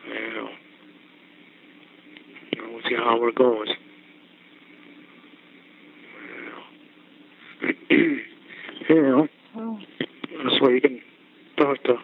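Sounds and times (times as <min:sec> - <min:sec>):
telephone line hum and hiss: 0:00.0 - 0:12.0.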